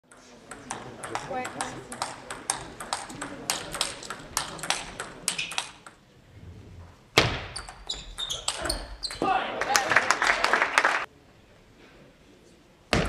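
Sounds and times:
table tennis ball hits: 0.1s - 6.0s.

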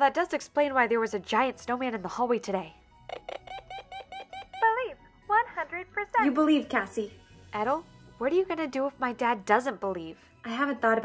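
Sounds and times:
electronic scanner chirps: 3.1s - 4.8s.

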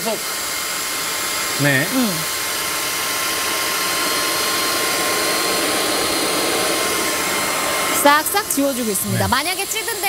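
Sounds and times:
vacuum cleaner motor whine: 0.0s - 10.0s.

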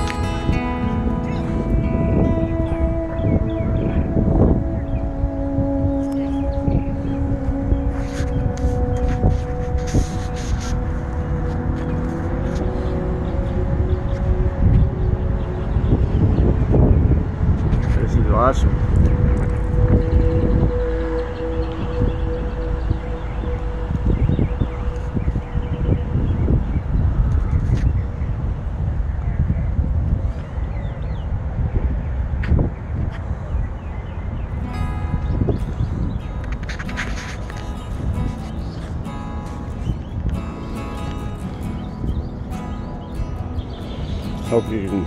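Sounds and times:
long held music notes: 0.0s - 28.9s, 34.5s - 45.0s
two-pitch drone: 0.0s - 29.2s, 34.5s - 45.0s
wind buffeting microphone: 0.0s - 45.0s.

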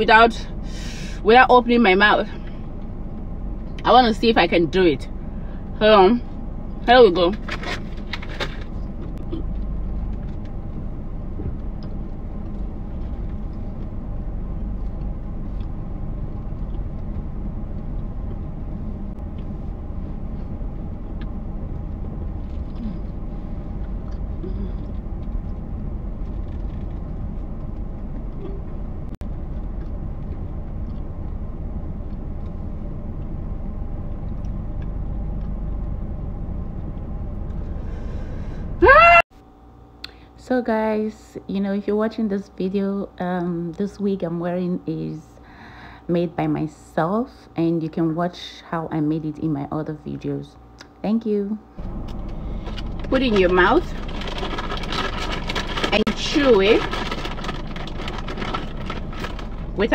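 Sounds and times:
road noise: 0.0s - 39.2s, 51.6s - 59.9s
car engine rumble: 0.0s - 59.9s.

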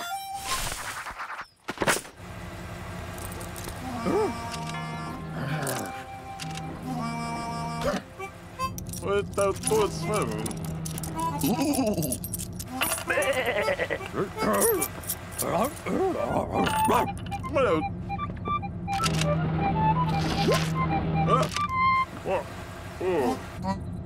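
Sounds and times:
coins jingling in a purse: 3.2s - 3.8s, 8.7s - 13.5s, 14.4s - 16.0s
mumbled cartoon vocalising: 3.8s - 5.9s, 12.7s - 14.8s, 15.4s - 17.1s, 22.2s - 23.8s
background music: 3.9s - 11.5s, 16.3s - 22.1s.

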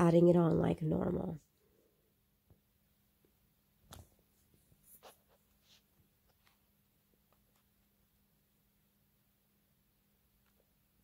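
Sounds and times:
soft scratchy rustles: 3.9s - 8.0s.

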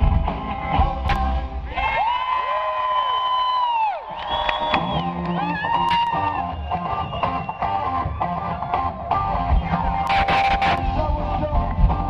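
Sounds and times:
live rock band: 0.0s - 2.2s, 4.3s - 12.0s
people whooping and cheering: 1.6s - 10.2s.

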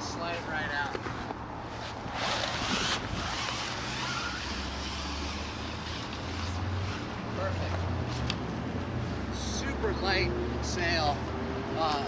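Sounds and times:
low outdoor background hum: 0.0s - 12.0s
fabric rustling swish: 1.1s - 8.2s.

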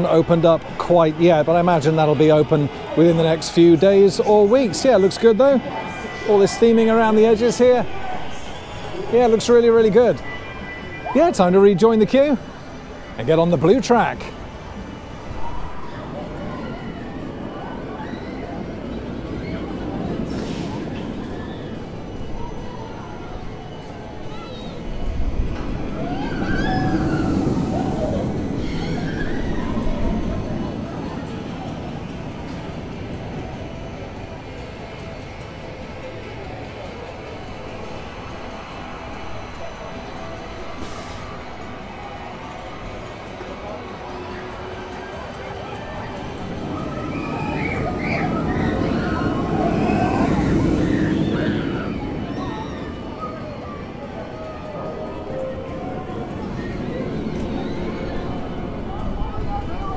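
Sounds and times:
roller coaster rumbling on steel track: 0.0s - 59.9s.

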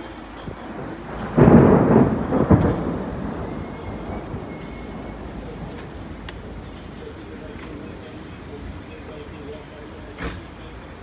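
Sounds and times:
thunder clap and rumble: 0.0s - 9.3s.

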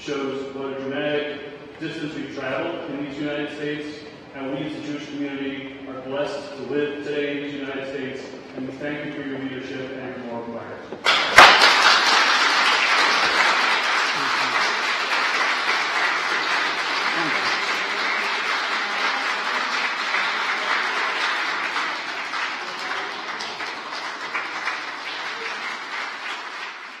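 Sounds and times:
crowd applauding: 11.0s - 27.0s.

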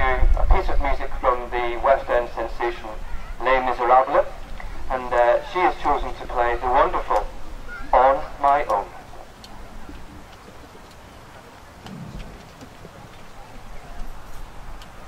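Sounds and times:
person making announcement: 0.0s - 7.3s, 7.9s - 9.1s.

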